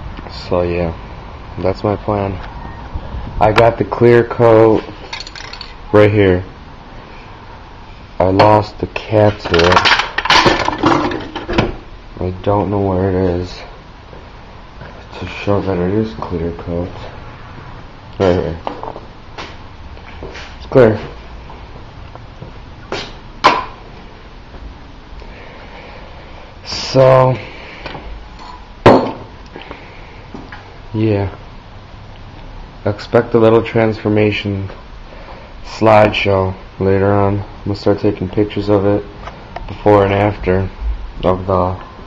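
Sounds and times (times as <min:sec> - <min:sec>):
small objects knocking and clattering: 0:05.0 - 0:05.8, 0:09.4 - 0:11.6.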